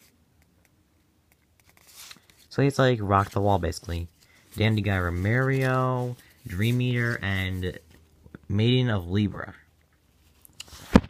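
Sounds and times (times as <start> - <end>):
trading cards sliding and clicking: 1.5 - 2.5.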